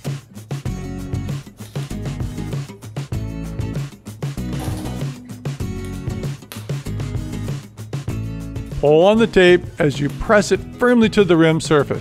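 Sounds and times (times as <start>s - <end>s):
music with strummed guitar: 1.4s - 6.5s.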